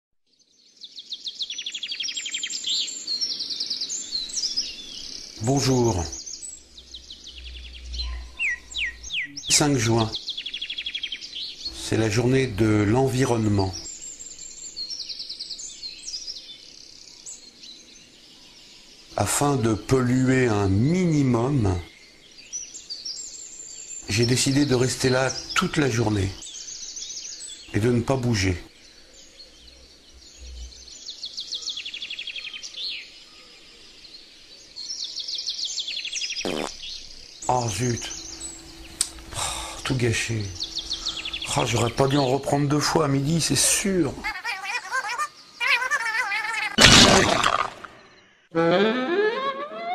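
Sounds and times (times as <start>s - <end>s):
outdoor background hiss: 0.3s - 49.1s
bird chirping: 0.3s - 49.9s
songbird trilling: 0.8s - 18.2s, 34.8s - 48.2s.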